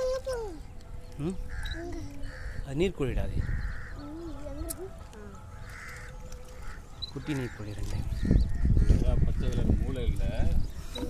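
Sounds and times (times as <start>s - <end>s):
crows cawing: 1.4s - 4.4s, 5.6s - 10.2s
low wind rumble: 1.5s - 4.7s, 5.6s - 11.0s.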